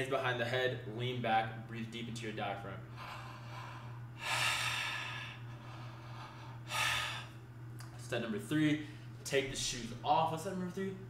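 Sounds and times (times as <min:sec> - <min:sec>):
man breathing deeply through mouth: 0:02.9 - 0:07.4.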